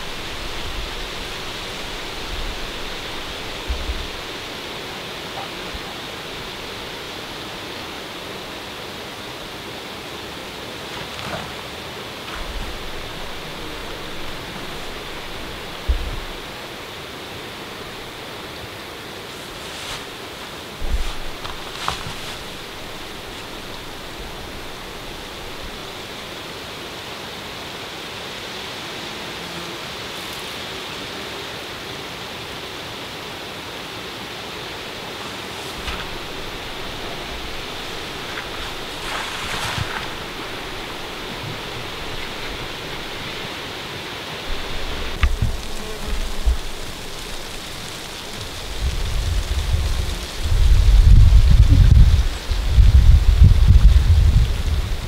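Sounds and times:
wind buffeting microphone: 0.0 - 7.2, 12.2 - 16.6, 20.7 - 26.4, 35.8 - 43.8, 44.4 - 55.0
steady outdoor hiss: 0.0 - 55.0.

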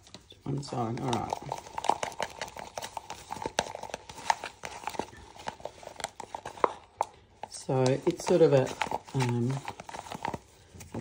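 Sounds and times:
stick scraping plastic cup: 0.5 - 11.0.

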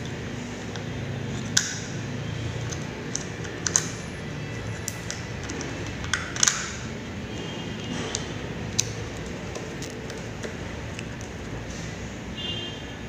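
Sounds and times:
steady background noise: 0.0 - 13.0
screwdriver clicking on metal housing: 0.7 - 1.9, 2.6 - 4.0, 4.8 - 6.9.

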